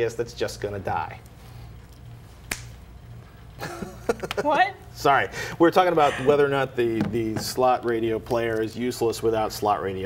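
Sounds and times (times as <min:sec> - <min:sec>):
finger snap: 0:02.5 - 0:02.8.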